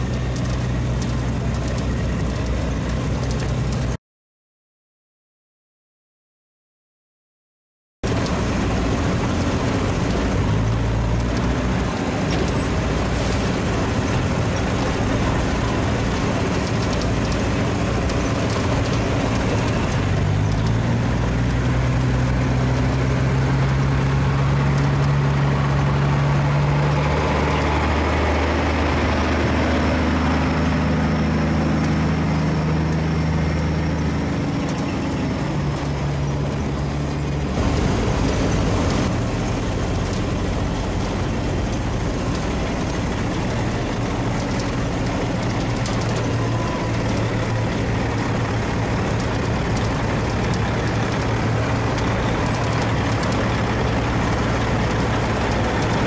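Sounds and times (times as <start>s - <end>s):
diesel truck engine: 0.0s - 4.0s, 8.0s - 56.0s.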